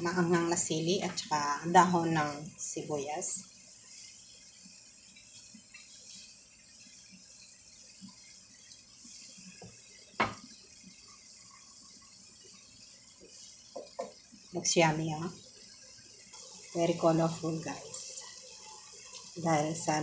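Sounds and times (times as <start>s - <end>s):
frying pan hiss: 0.0s - 20.0s.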